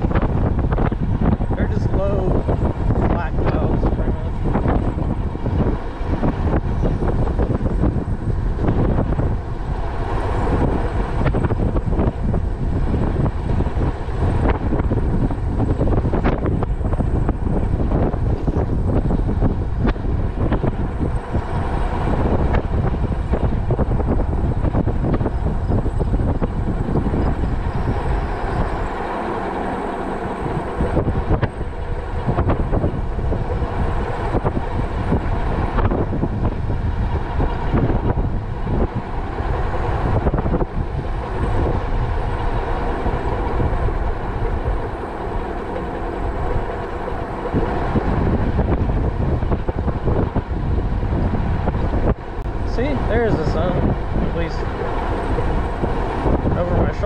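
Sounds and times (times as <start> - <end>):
bike riding noise: 0.0 - 57.0
wind buffeting microphone: 0.0 - 57.0.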